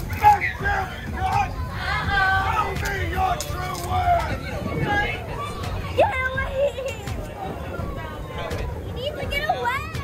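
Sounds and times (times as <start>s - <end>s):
children and adults shouting: 0.0s - 10.0s.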